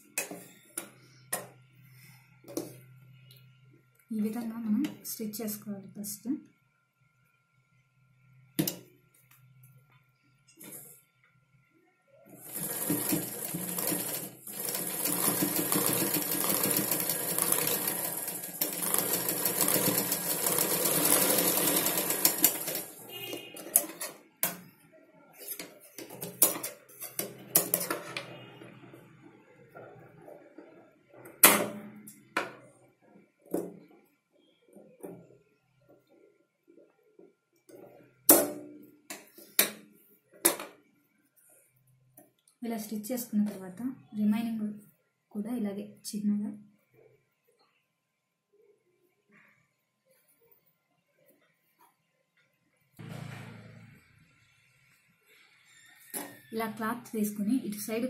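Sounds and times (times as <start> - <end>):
sewing machine running: 12.4 - 23.8.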